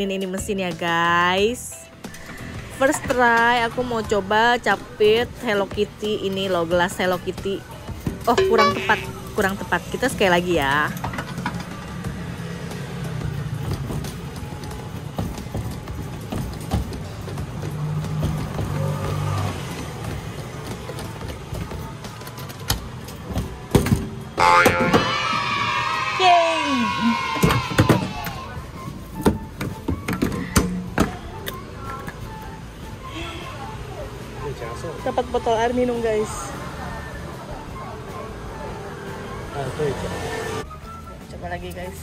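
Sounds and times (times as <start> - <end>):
arcade background noise: 0.0 - 42.0
jingle of gliding tones: 8.3 - 9.3
claw machine electronic music: 8.4 - 9.3.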